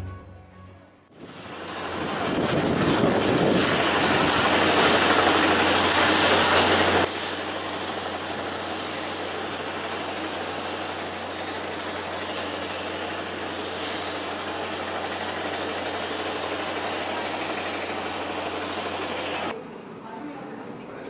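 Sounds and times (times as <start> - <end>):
construction machinery running: 0.0 - 19.6.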